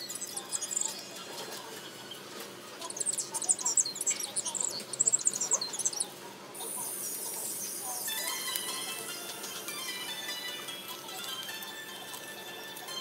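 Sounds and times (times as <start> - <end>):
background music: 8.0 - 13.0.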